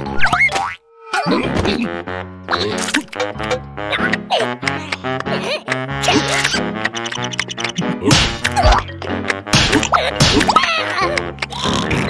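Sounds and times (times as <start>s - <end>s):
playful background music: 0.0s - 12.0s
cartoon whacks and thuds: 7.7s - 8.8s, 9.4s - 10.7s.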